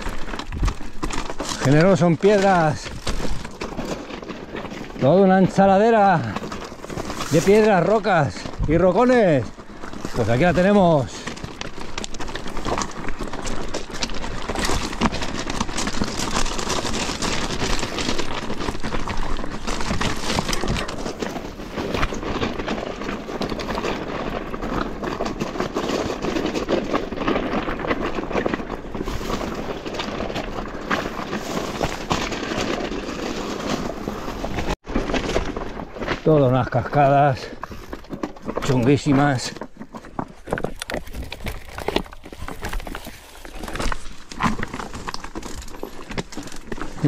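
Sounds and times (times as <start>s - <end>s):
bike rattling and clattering: 0.0s - 47.0s
tyres crunching over stones: 0.0s - 47.0s.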